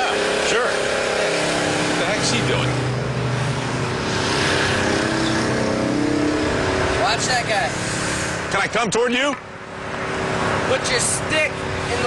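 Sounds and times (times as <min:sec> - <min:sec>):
pump motor droning: 0:00.0 - 0:08.4.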